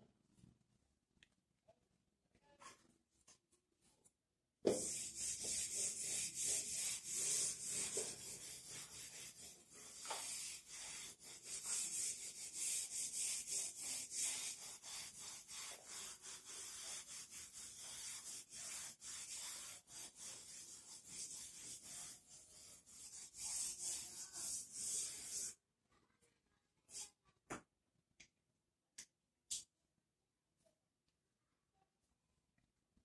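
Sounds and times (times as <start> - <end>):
eraser rubbing on whiteboard: 4.7 - 25.6.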